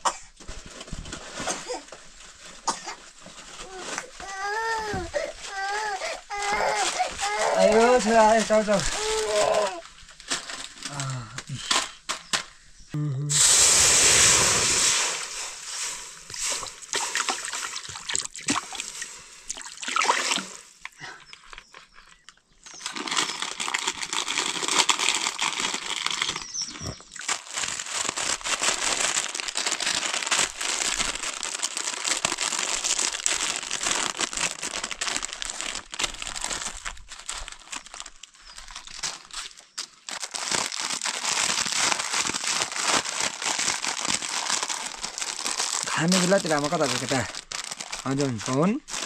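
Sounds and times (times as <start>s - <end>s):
plastic packets crinkling: 0.2s - 12.6s, 14.0s - 49.0s
water being poured: 13.3s - 21.0s.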